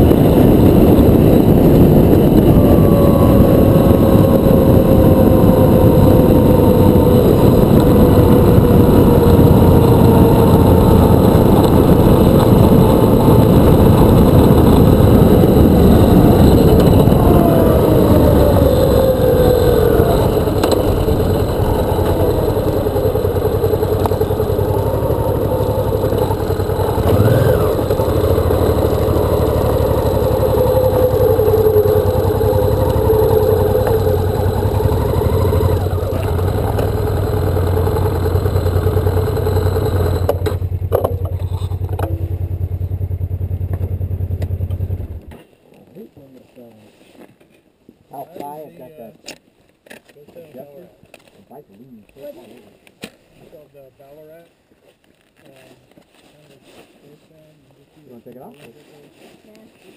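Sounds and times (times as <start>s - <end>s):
wind noise: 0.0s - 45.2s
motorcycle engine: 0.0s - 45.4s.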